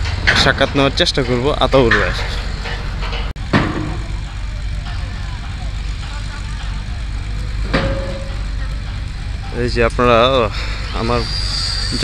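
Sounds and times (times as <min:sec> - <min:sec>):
faint voices: 0:00.0 - 0:12.0
low engine rumble: 0:00.0 - 0:12.0.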